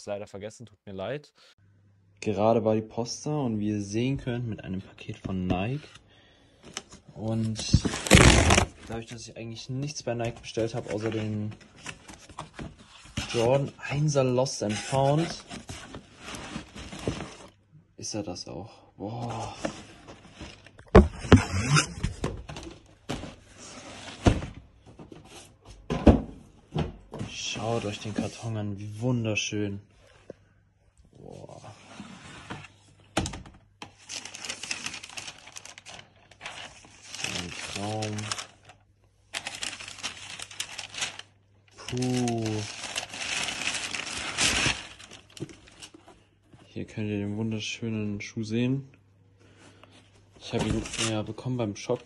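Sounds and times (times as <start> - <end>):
cardboard rustling and scraping: 10.2 - 17.6
tissue paper crinkling: 34.1 - 46.0.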